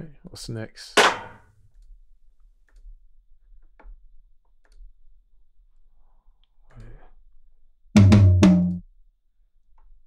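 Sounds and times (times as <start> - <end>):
sampled drum hit ringing out: 8.0 - 8.8.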